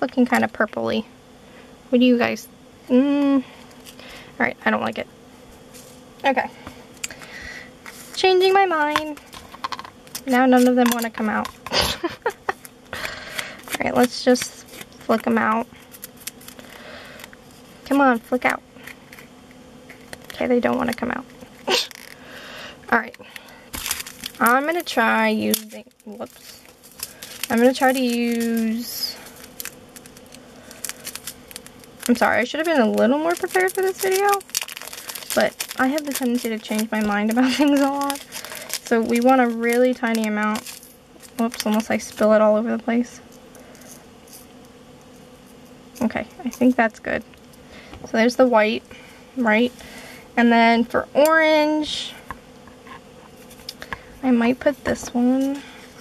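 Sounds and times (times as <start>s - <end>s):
steady low hum: 0.0s - 56.0s
faint packet rustle: 23.0s - 42.2s.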